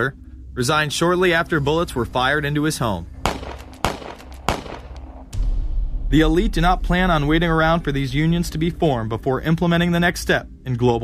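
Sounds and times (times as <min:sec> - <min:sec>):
gunshots: 0:03.2 - 0:06.7.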